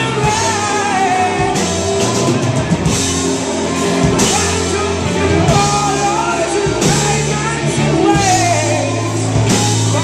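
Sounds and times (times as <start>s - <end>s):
rock band playing: 0.0s - 10.0s.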